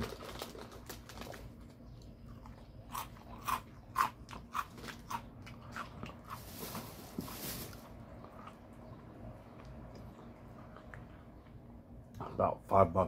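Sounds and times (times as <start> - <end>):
person chewing crunchy snack: 2.2 - 11.6.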